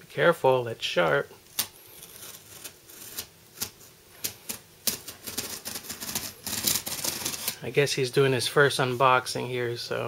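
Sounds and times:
box cutter slitting packing tape: 1.5 - 7.6.

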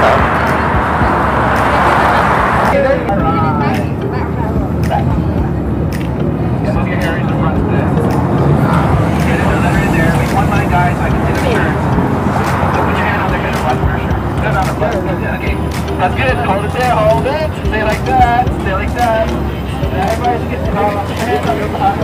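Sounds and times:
crowd chatter: 0.0 - 22.0
road traffic rumble: 0.0 - 22.0.

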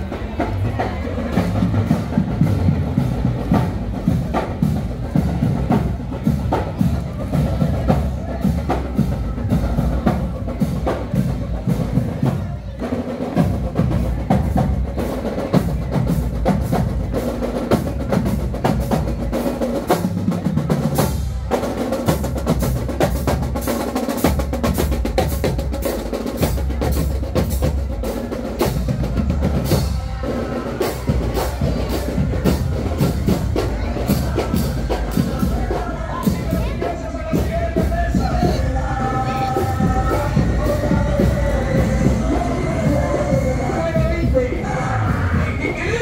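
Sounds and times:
drums and congas beat: 0.0 - 46.0.

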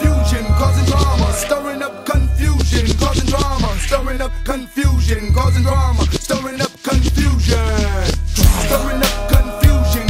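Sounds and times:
rap vocals over heavy bass: 0.0 - 10.0.

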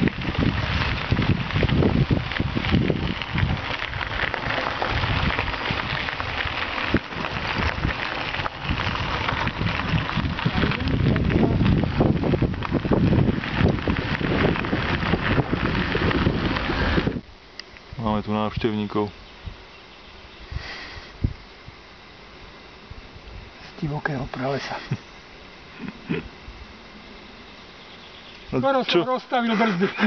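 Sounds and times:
wind on microphone: 0.0 - 17.3, 20.4 - 21.8
tyres crackling on gravel: 0.0 - 30.0.

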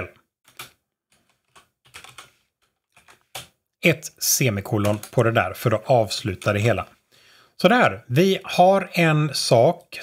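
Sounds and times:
faint keyboard typing: 0.5 - 3.6, 4.7 - 5.5.

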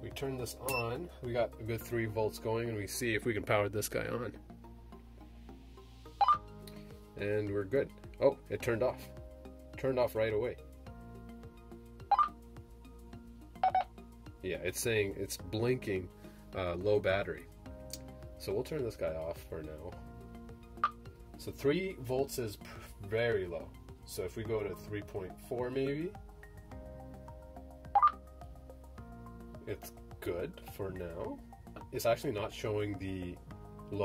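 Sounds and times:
soft background music: 0.0 - 34.0.

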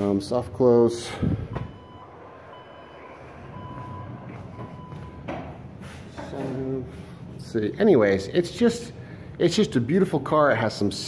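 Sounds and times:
high electronic beeping: 1.5 - 5.2.

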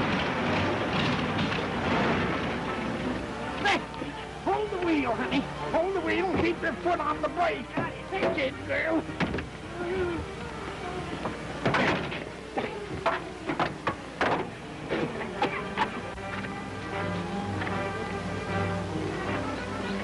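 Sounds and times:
orchestral chase music: 0.0 - 9.8, 15.6 - 20.0.

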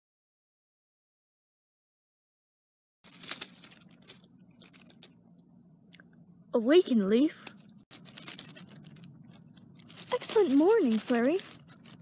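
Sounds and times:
dry leaves crunching: 3.1 - 5.1, 7.5 - 12.0.

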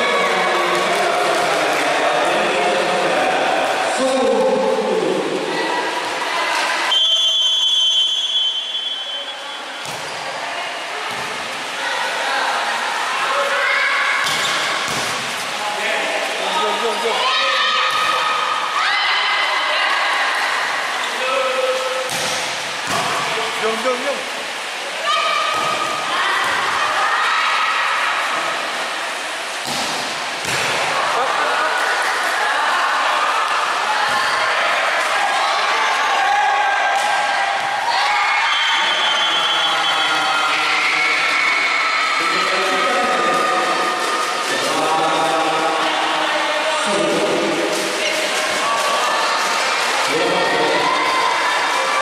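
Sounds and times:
players and spectators shouting: 0.0 - 7.0, 15.8 - 22.1, 24.7 - 28.4, 30.7 - 52.0
referee's whistle: 6.9 - 9.6, 38.5 - 40.2
volleyball hitting hard court: 9.8 - 10.2, 11.1 - 11.4, 14.2 - 15.5, 22.0 - 23.3, 29.6 - 31.0.

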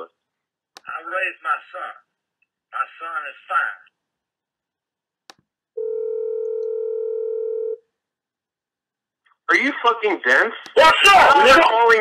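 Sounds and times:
steady phone tone: 5.8 - 7.8.

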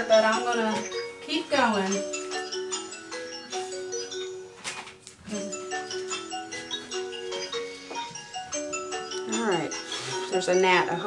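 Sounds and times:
phone ringtone melody: 0.0 - 11.0.

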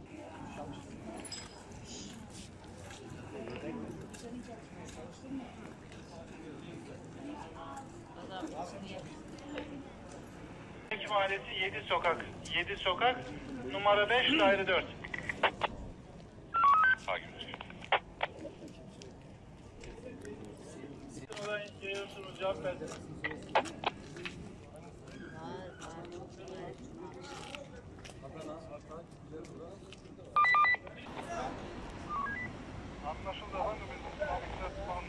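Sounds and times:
short electronic beeps: 32.0 - 32.5.

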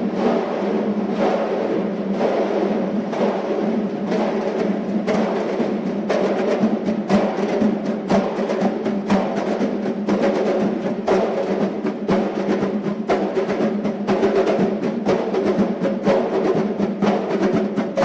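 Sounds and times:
large drums beaten in rhythm: 0.0 - 18.0.

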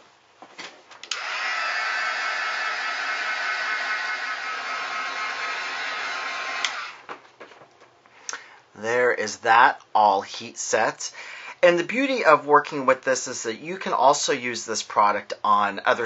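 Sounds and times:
heat gun blowing: 1.1 - 7.0.

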